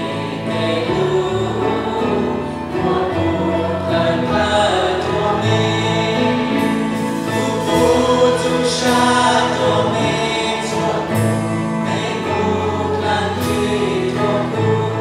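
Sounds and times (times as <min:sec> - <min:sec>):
voices singing: 0:00.0 - 0:15.0
worship band playing: 0:00.0 - 0:15.0.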